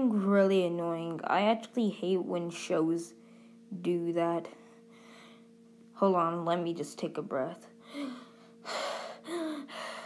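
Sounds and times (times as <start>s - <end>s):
person breathing deeply: 7.8s - 10.0s.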